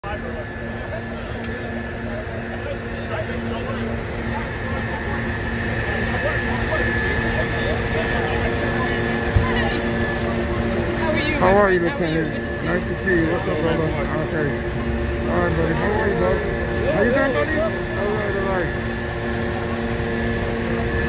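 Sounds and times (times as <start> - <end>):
chatter of many voices: 0.0 - 21.0
diesel engines rumbling: 0.0 - 21.0.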